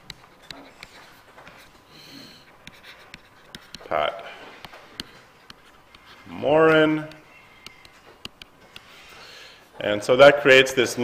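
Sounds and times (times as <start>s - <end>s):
stylus scratching on tablet screen: 0.0s - 9.6s
man speaking: 3.8s - 4.4s, 6.2s - 7.3s, 9.8s - 11.0s.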